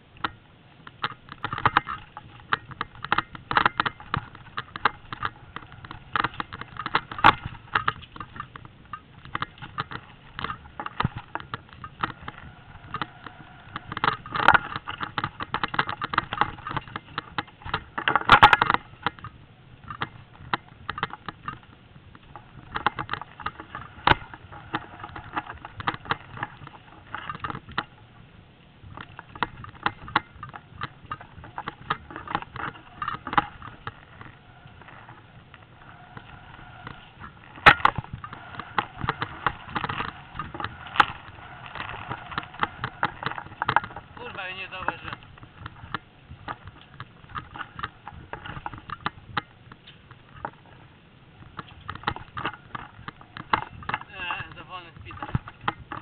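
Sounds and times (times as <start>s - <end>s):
bike rattling over rough trail: 0.0s - 56.0s.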